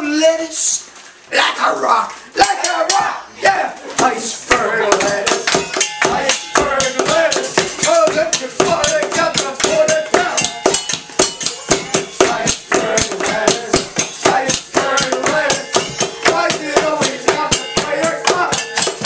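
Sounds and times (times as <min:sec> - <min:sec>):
people singing: 0:02.4 - 0:19.0
wooden spoons beating pots: 0:03.9 - 0:19.0.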